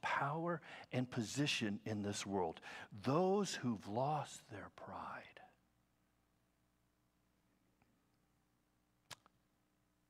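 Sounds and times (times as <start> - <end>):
man speaking: 0.0 - 5.5
faint steady hum: 0.0 - 10.0.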